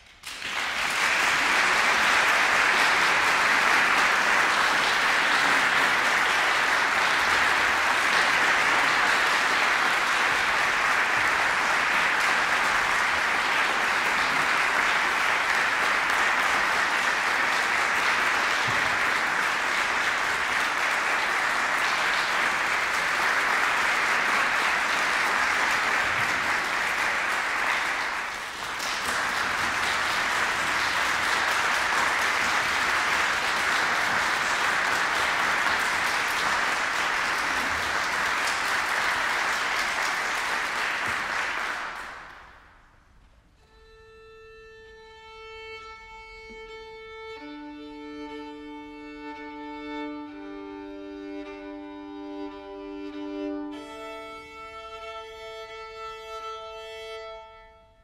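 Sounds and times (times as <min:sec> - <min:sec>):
crowd applauding: 0:00.0 - 0:42.9.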